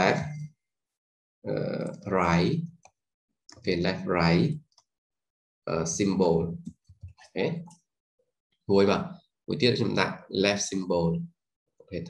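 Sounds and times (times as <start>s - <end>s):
man speaking: 0.0s - 0.5s, 1.5s - 2.7s, 3.5s - 4.6s, 5.7s - 6.7s, 7.3s - 7.7s, 8.7s - 11.2s.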